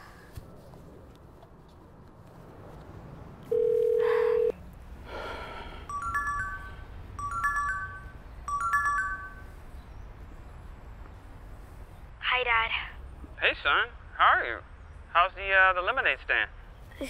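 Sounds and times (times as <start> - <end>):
smartphone ringtone chimes: 3.5 - 4.5, 5.8 - 9.6
phone ringback tone: 3.5 - 4.6, 5.8 - 9.5.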